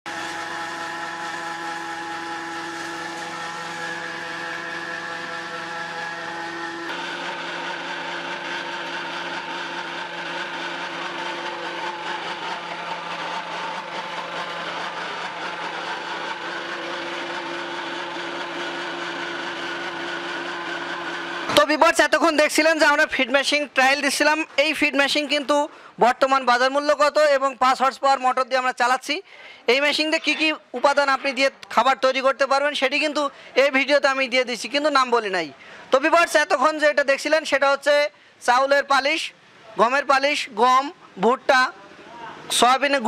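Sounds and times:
feed mill humming and whining: 0.1s - 22.9s.

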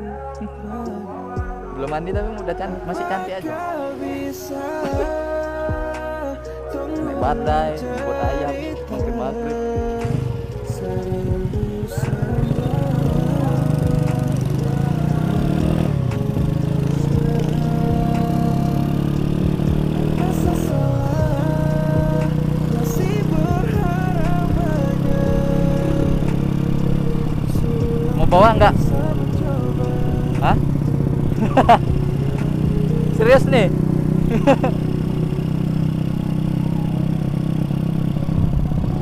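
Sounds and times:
music playing: 0.0s - 39.0s
motorcycle engine running: 4.7s - 6.3s, 7.0s - 39.0s.

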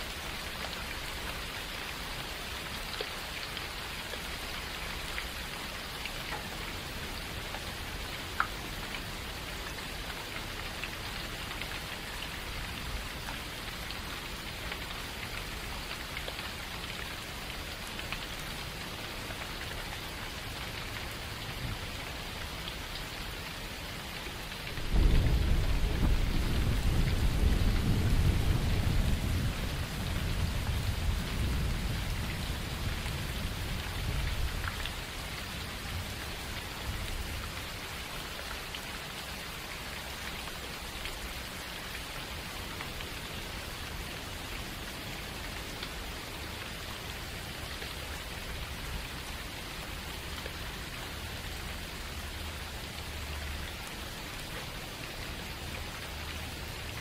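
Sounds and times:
rainfall hiss: 0.0s - 57.0s
deep rumble of thunder: 24.8s - 33.1s.

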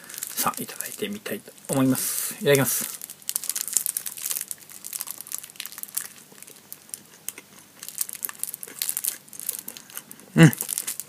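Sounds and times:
plastic film wrapper crinkling: 0.0s - 11.0s.

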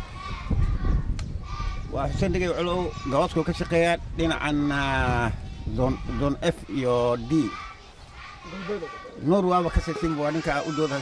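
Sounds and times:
man speaking into microphone: 8.5s - 11.0s.

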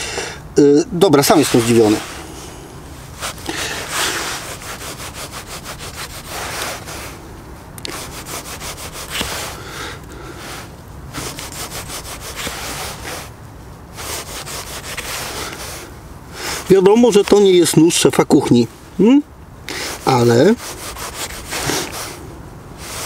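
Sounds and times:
knife sawing strokes: 1.2s - 2.5s, 3.1s - 7.2s, 7.8s - 9.7s, 10.3s - 13.3s, 14.0s - 17.7s, 19.7s - 22.2s, 22.8s - 23.0s.

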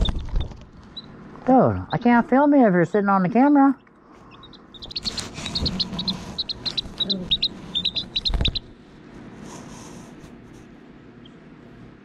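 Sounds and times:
chick peeping: 0.0s - 1.2s, 3.4s - 8.8s
bump against camera: 8.2s - 8.6s.

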